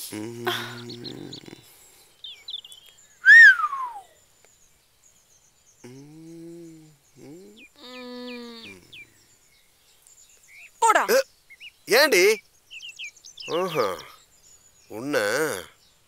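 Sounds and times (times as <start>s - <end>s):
small bird chirps: 0.0s - 16.0s
whistled bird call falling in pitch: 3.2s - 4.2s.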